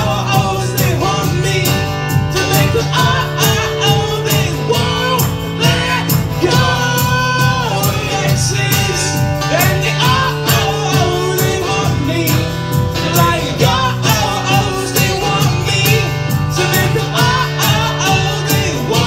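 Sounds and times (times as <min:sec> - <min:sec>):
bass line: 0:00.0 - 0:19.0
group singing: 0:00.0 - 0:19.0
percussion beat: 0:00.0 - 0:19.0
strummed acoustic guitar: 0:00.0 - 0:19.0.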